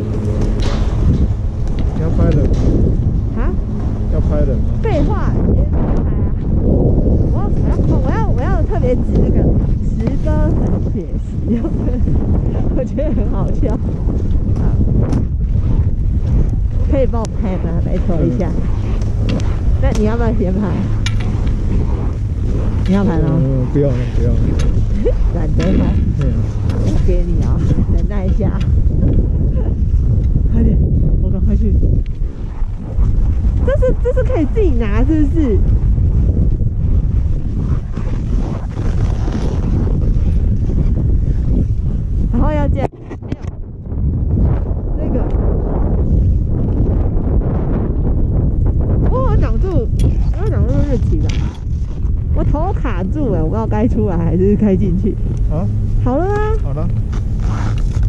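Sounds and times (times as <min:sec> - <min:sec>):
wind buffeting microphone: 0:00.0 - 0:58.0
voices talking: 0:01.9 - 0:06.5, 0:07.3 - 0:13.8, 0:16.9 - 0:18.7, 0:22.6 - 0:28.7, 0:33.6 - 0:35.6.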